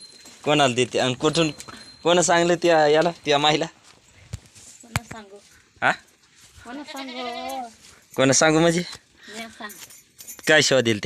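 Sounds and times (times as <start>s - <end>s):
goat bleating: 6.6s - 7.8s.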